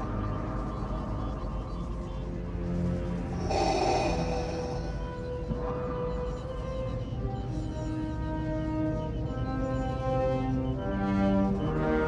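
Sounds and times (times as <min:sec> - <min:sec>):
faint held orchestral notes: 0:00.0 - 0:12.0
steady low rumble: 0:03.2 - 0:05.9.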